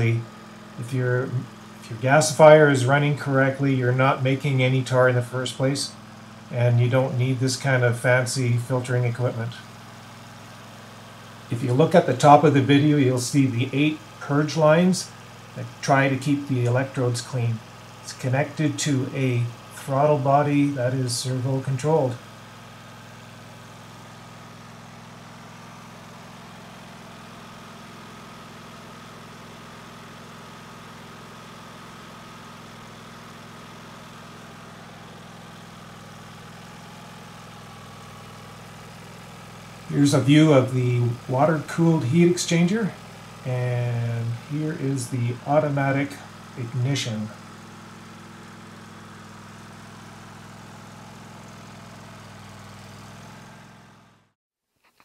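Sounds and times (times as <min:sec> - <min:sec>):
faint steady whine: 0:00.0 - 0:53.2
engine idling: 0:00.0 - 0:55.0.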